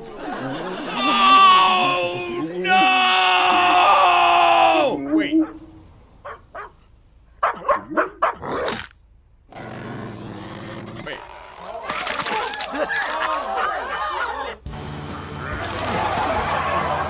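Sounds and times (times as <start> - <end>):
man screaming: 0.9 - 5.0.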